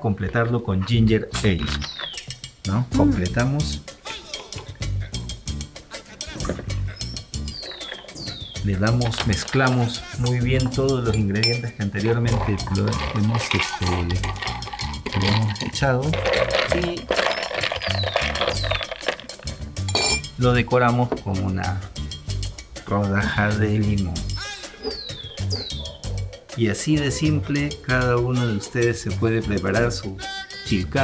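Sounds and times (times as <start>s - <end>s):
background music with steady beat: 0.9s - 31.0s
bar spoon clinking against ice and glass: 8.9s - 20.4s.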